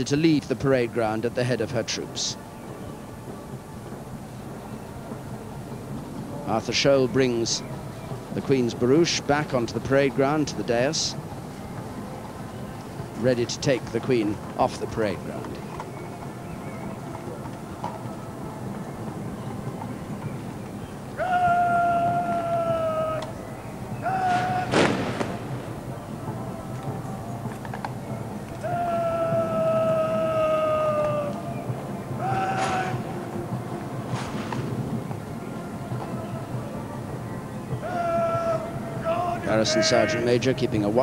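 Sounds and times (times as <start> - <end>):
sharp crack of arms drill: 24.0 - 25.8, 32.2 - 33.1
person shouting commands: 38.0 - 40.5.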